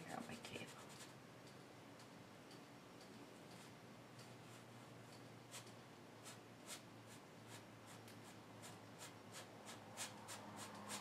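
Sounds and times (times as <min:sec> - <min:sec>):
paintbrush strokes on canvas: 0:05.5 - 0:11.0.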